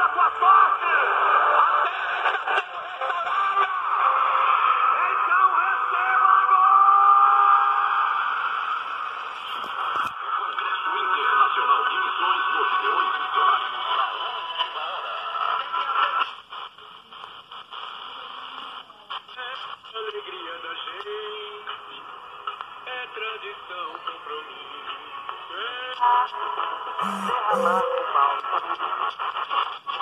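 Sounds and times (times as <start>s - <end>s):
muffled radio broadcast with voice: 9.3s - 22.1s, 22.9s - 30.0s.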